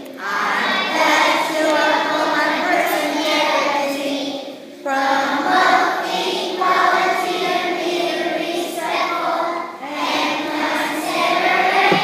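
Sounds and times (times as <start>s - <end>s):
young children singing: 0.0s - 12.0s.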